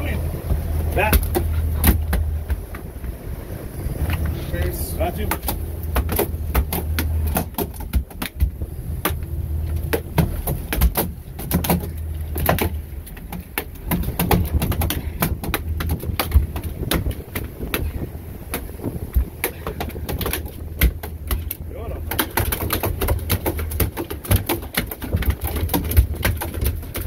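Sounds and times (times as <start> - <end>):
boat engine humming: 0.0 - 27.0
knocks and thuds on boat deck: 0.0 - 27.0.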